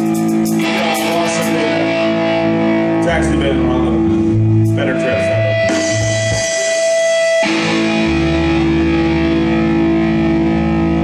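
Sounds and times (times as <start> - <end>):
bass guitar sustained notes: 0.0 - 11.0
electric guitar sustained notes: 0.0 - 11.0.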